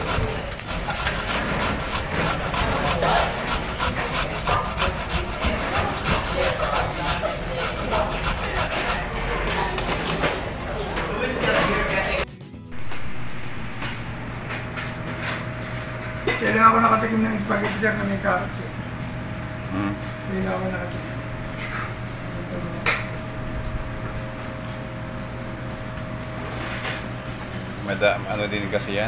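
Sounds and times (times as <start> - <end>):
carrot grated on metal grater: 0.0 - 10.3.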